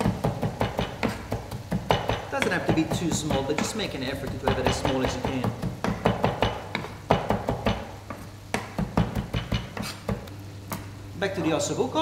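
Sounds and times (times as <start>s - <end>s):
knife chopping on wooden board: 0.0s - 10.3s.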